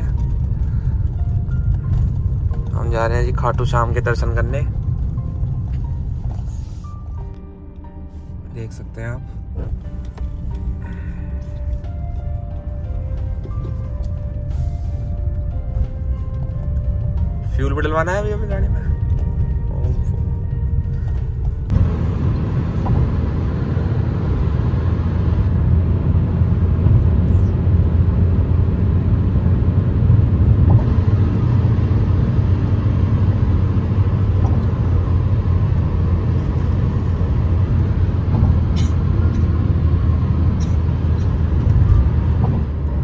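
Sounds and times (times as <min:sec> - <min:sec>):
car road and engine rumble: 0:00.0 - 0:43.0.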